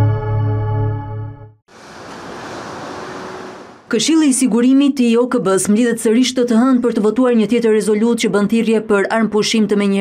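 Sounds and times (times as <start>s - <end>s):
steady rushing noise: 1.7s - 3.9s.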